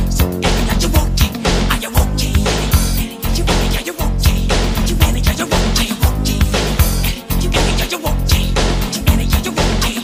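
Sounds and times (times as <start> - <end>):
music with drum beat and bass: 0.0 - 10.0.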